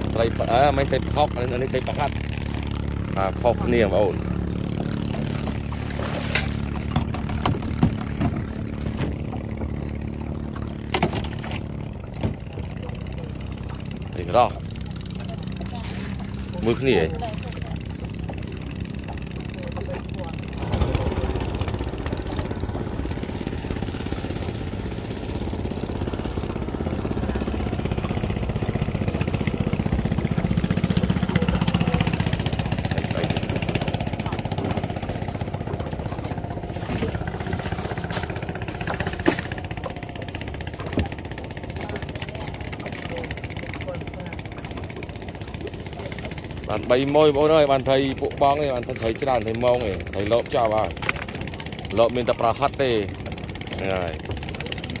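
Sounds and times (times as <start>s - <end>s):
small boat engine running: 0.0s - 55.0s
people talking: 40.9s - 44.8s, 45.6s - 51.0s, 51.6s - 55.0s.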